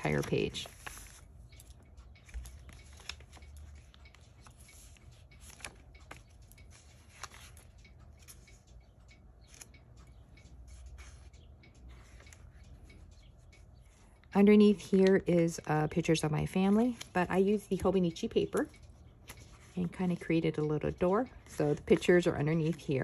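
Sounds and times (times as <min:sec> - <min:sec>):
paper pages rustling and crackling: 0:00.0 - 0:08.6
low steady hum: 0:00.0 - 0:23.0
small scattered clicks: 0:00.7 - 0:14.2.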